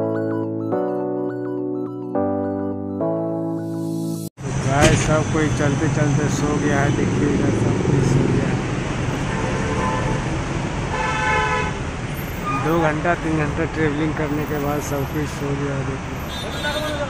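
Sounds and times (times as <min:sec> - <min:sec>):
music track: 0:00.0 - 0:04.3
bus engine and road noise: 0:04.4 - 0:17.0
passengers talking: 0:04.6 - 0:08.6
vehicle horn honking: 0:09.2 - 0:10.3, 0:10.9 - 0:11.8, 0:16.2 - 0:17.0.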